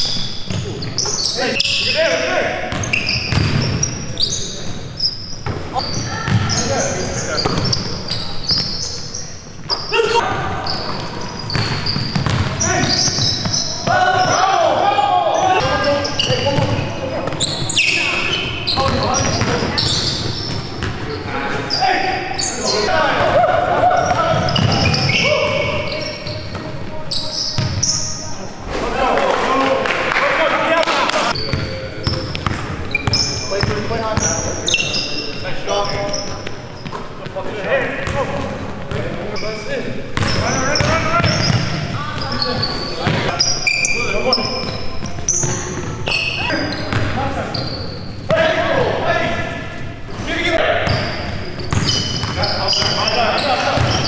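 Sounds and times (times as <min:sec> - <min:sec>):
sneaker squeaks: 0:00.0 - 0:28.6, 0:31.2 - 0:37.4, 0:38.0 - 0:54.0
players' indistinct calls: 0:00.0 - 0:54.0.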